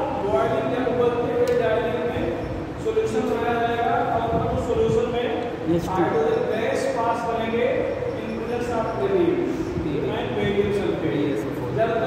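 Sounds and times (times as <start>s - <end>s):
man lecturing: 0.0s - 12.0s.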